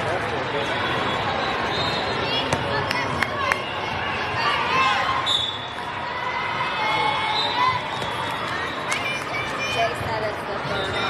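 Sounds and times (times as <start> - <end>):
crowd chatter in a hall: 0.0 - 11.0.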